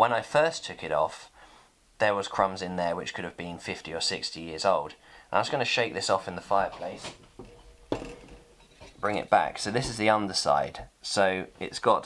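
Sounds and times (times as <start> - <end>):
metal tray knocking: 7.4 - 9.0.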